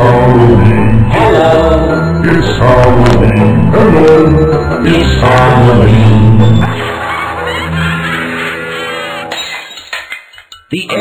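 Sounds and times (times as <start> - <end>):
children's song backing music: 0.0 - 7.8.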